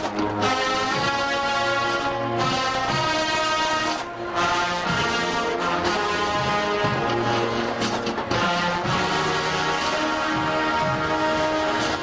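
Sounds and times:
marching band brass chords: 0:00.0 - 0:12.0.

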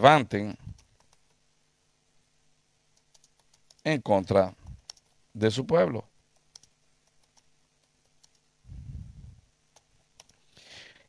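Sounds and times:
computer keyboard typing: 0:00.7 - 0:01.4, 0:03.0 - 0:03.9, 0:04.8 - 0:05.2, 0:06.3 - 0:08.5, 0:09.7 - 0:10.4.

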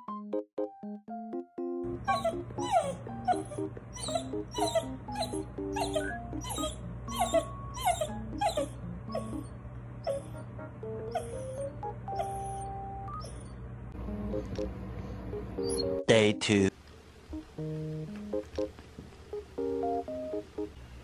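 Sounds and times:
dog whimpering: 0:02.0 - 0:10.5, 0:11.1 - 0:13.6, 0:15.6 - 0:16.0.

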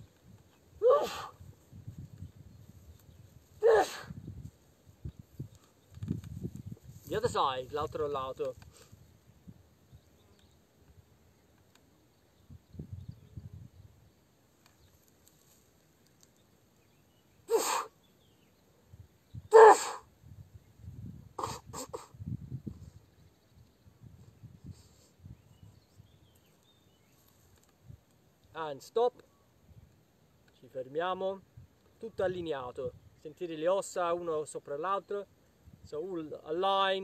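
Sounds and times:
person sneezing: 0:00.8 - 0:01.4, 0:17.5 - 0:17.9, 0:19.5 - 0:20.1, 0:21.4 - 0:22.1
short bursts of breath: 0:17.5 - 0:17.9.

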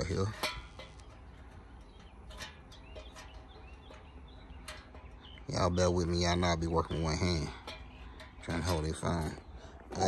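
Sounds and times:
faint bird chirps: 0:00.9 - 0:10.0.

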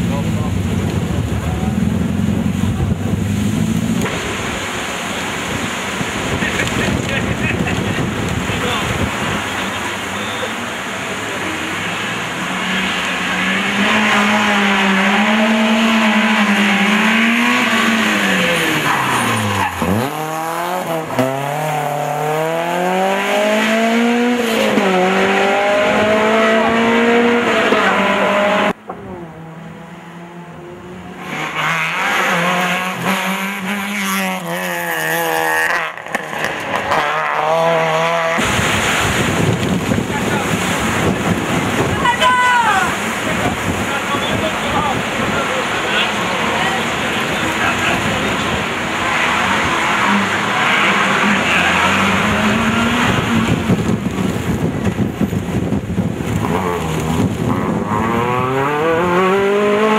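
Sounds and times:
car engine revving: 0:00.0 - 0:59.9
wind noise on microphone: 0:00.5 - 0:09.6, 0:38.4 - 0:45.4, 0:52.1 - 0:59.2.

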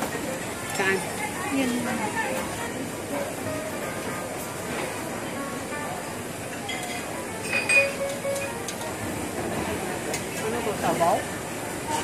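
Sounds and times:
buffet kitchen clatter and hum: 0:00.0 - 0:12.0
tableware clink: 0:06.5 - 0:08.8.

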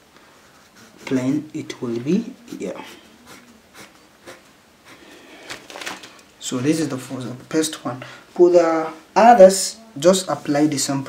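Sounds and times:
pencil scratching on paper: 0:00.5 - 0:01.5, 0:02.1 - 0:05.1.

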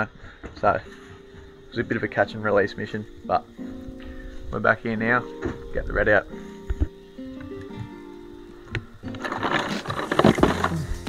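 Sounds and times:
background music: 0:00.0 - 0:11.0
ice and plastic bag rustling: 0:09.1 - 0:11.0.

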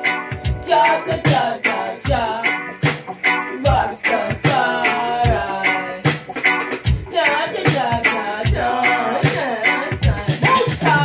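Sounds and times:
hi-hat ticks: 0:00.0 - 0:11.0
woman singing: 0:00.6 - 0:02.6, 0:03.6 - 0:06.1, 0:07.1 - 0:11.0.

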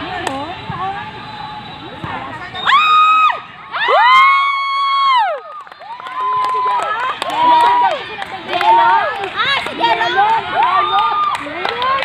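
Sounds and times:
football spectators cheering: 0:00.2 - 0:12.0.

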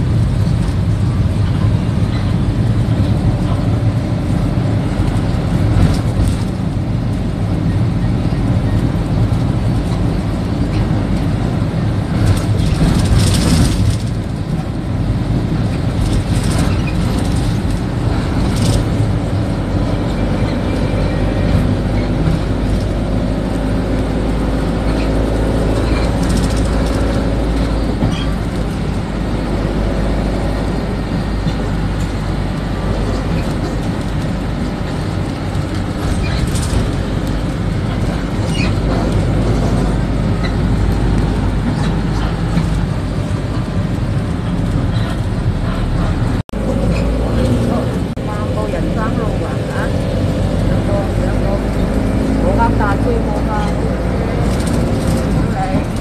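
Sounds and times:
bus engine and road noise: 0:00.0 - 0:56.0.

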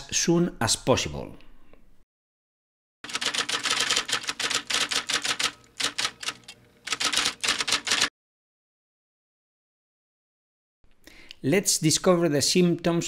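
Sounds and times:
typewriter key clacks: 0:03.1 - 0:08.1.

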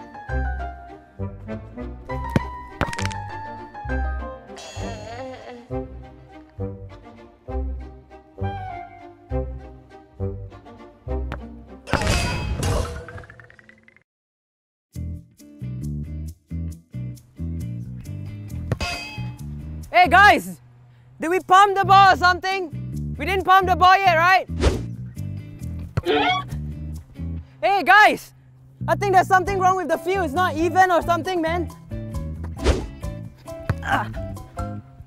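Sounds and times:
background music: 0:00.0 - 0:13.5, 0:15.0 - 0:20.6, 0:21.3 - 0:35.0
football kick thud: 0:02.3 - 0:03.2
sharp metallic clang: 0:11.9 - 0:13.1, 0:18.8 - 0:19.5.

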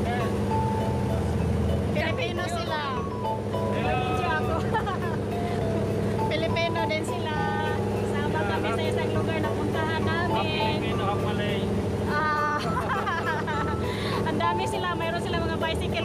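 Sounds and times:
boat engine droning: 0:00.0 - 0:16.0
people talking: 0:06.2 - 0:13.4, 0:14.1 - 0:16.0.

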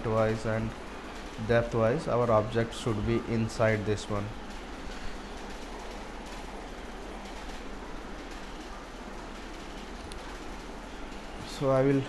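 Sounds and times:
room and microphone hiss: 0:00.0 - 0:12.0.

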